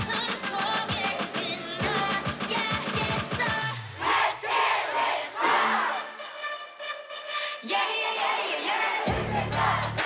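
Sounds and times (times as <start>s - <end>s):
song beat: 0.0s - 4.8s, 5.4s - 10.0s
audience screaming and cheering: 8.6s - 10.0s.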